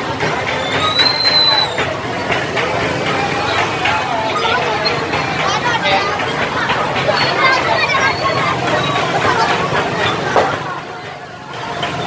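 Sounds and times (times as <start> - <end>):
motorcycle engine running: 0.0 - 12.0
voices: 0.0 - 12.0.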